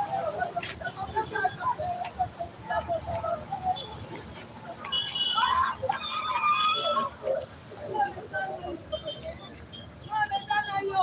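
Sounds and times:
people's voices in street: 0.0 - 11.0.

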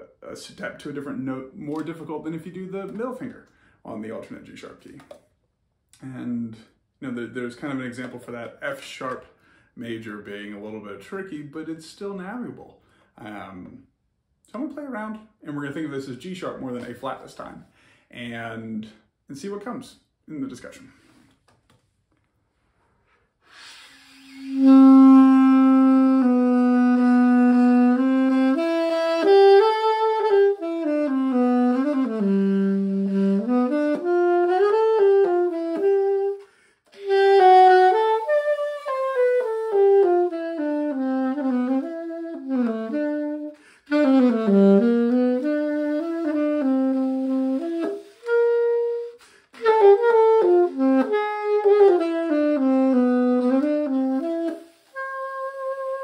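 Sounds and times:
solo alto saxophone: 23.4 - 56.0.

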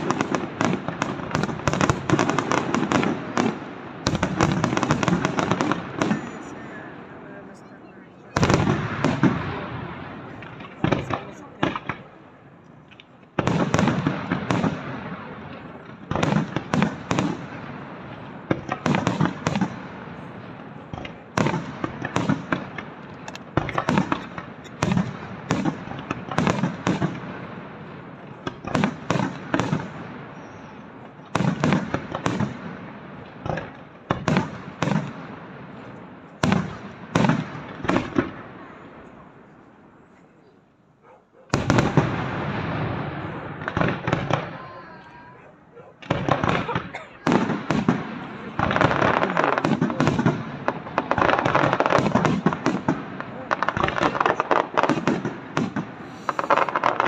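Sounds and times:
fireworks bursting: 0.0 - 57.0.

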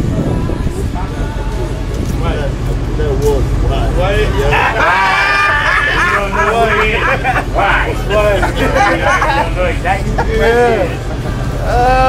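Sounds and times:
low hum: 0.0 - 12.0
men talking: 0.7 - 12.0
man laughing: 4.2 - 12.0.

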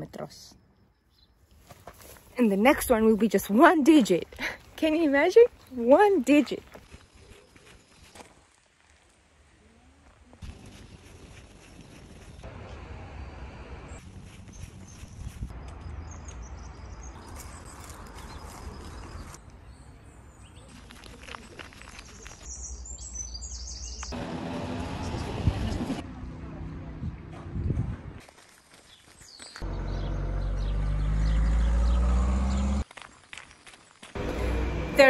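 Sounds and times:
wind rumble on microphone: 26.9 - 28.2.

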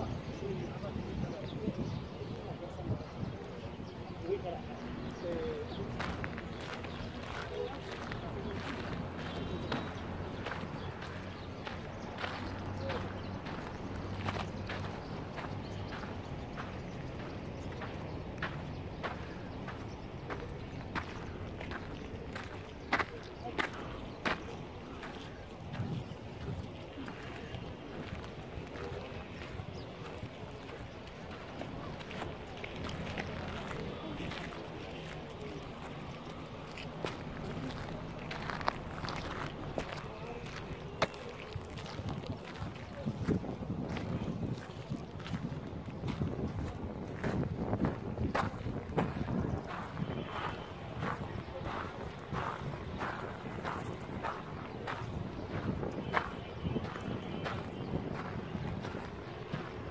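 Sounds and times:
people talking indistinctly: 0.0 - 59.9
footsteps on stone and sand: 0.2 - 59.9.

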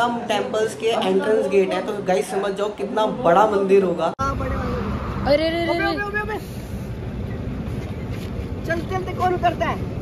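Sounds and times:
vehicle engine rumbling: 4.2 - 10.0.

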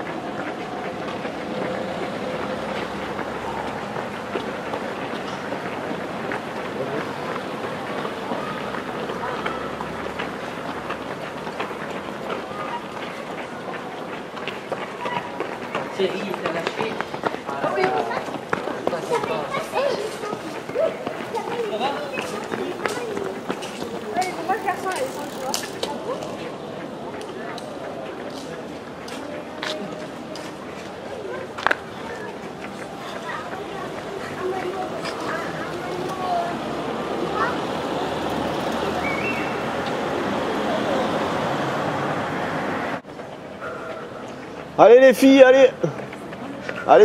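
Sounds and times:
indistinct voices chattering: 0.0 - 47.0
runners' footsteps on pavement: 0.0 - 47.0.

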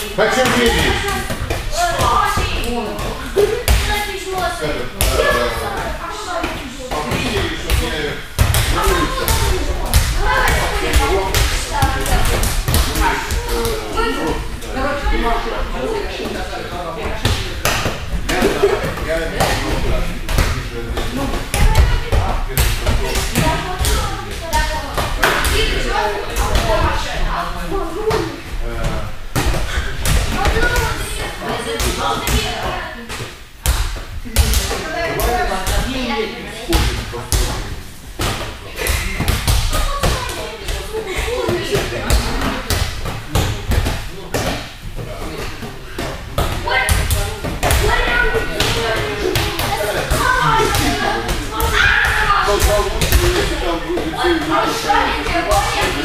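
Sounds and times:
voices: 0.0 - 29.0, 34.3 - 56.0
balls bouncing on gym mats: 0.2 - 14.7, 17.0 - 27.1, 28.0 - 36.0, 36.7 - 56.0.

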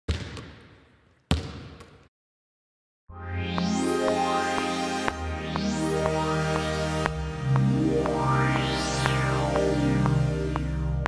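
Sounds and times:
basketball bouncing on gym floor: 0.1 - 2.1.

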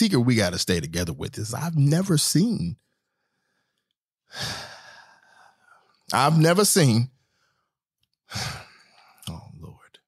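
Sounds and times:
man sighing: 4.3 - 5.4, 8.3 - 8.8.

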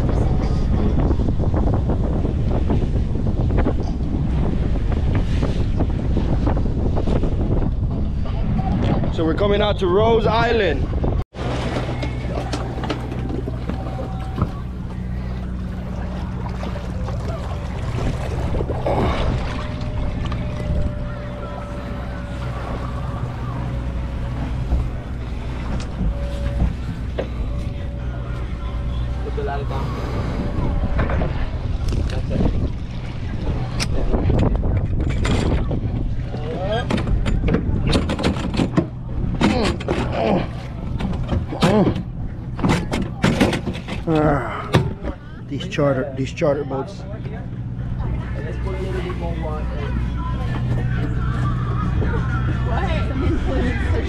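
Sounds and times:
wind on microphone: 0.0 - 45.2
boat engines humming: 0.0 - 54.0
low steady drone: 11.4 - 54.0.

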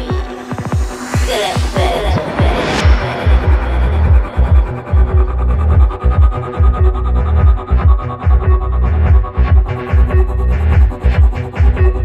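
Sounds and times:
high-pitched percussion: 0.0 - 12.0
psytrance music: 0.0 - 12.0.

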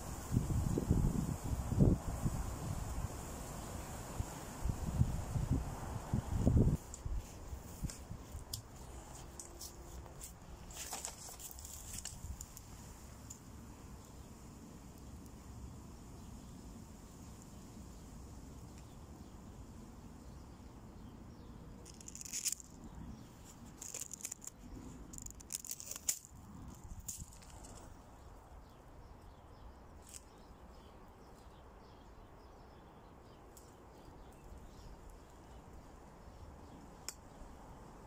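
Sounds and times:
dry leaves and twigs rustling: 6.1 - 14.3, 21.7 - 28.4, 30.0 - 30.6.

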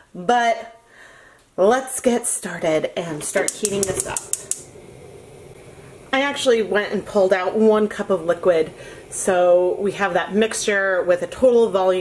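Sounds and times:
stove faint hum: 2.0 - 12.0
stove igniter clicks: 3.2 - 4.7.

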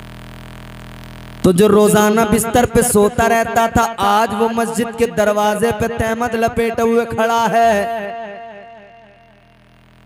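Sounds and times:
man's amplified voice echoing: 1.4 - 9.6.

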